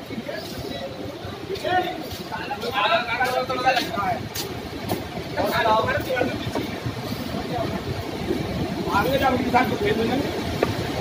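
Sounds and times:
people's voices: 0.0 - 11.0
river rushing roar: 2.8 - 11.0.

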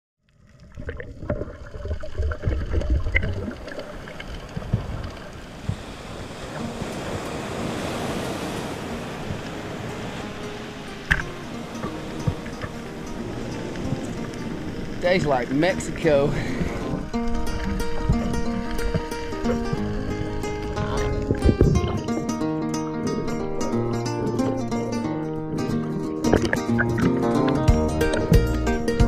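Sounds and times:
muffled underwater rush: 0.3 - 27.2
heavy low rumbling: 16.3 - 25.1.

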